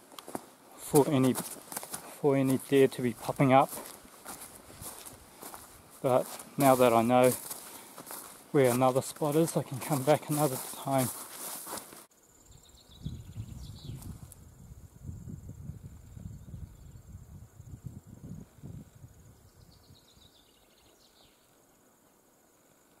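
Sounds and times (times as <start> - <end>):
high insect drone: 0.3 - 23.0
wind gusts on microphone: 4.2 - 6.0, 12.6 - 20.3.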